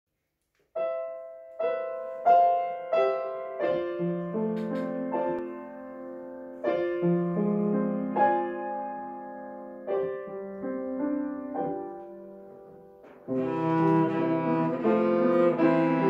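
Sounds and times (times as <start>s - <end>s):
grand piano playing chords: 0.7s - 16.0s.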